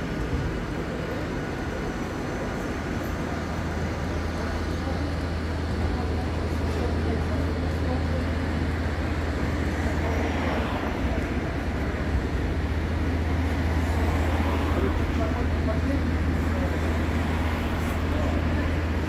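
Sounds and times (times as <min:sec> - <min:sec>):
city street traffic: 0:00.0 - 0:19.0
low engine hum: 0:00.0 - 0:19.0.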